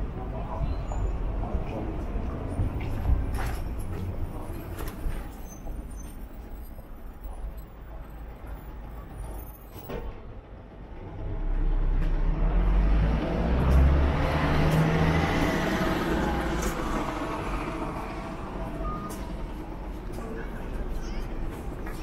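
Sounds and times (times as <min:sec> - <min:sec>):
bus engine rumble: 0:00.0 - 0:22.0
road noise: 0:00.0 - 0:22.0.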